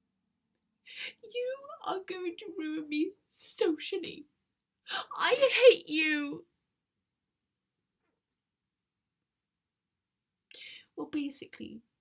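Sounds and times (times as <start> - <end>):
woman speaking: 1.2 - 4.2, 4.9 - 6.5, 11.0 - 11.8.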